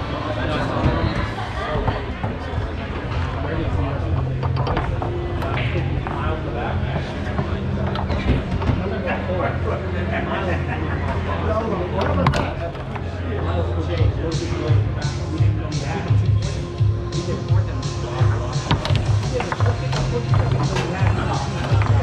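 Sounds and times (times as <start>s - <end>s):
background voices: 0.0s - 22.0s
foosball ball clacking: 4.1s - 6.2s, 6.9s - 8.9s, 18.6s - 22.0s.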